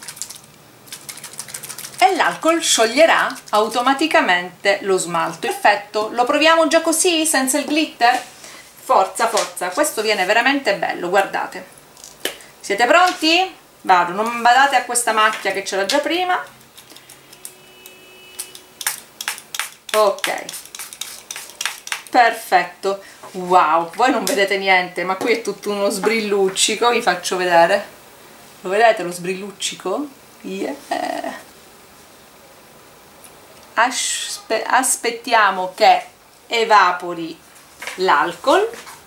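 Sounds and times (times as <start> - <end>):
spray bottle shaken rattling: 0.0 - 3.8, 18.8 - 22.2
spray bottle hissing squirts: 18.3 - 22.1.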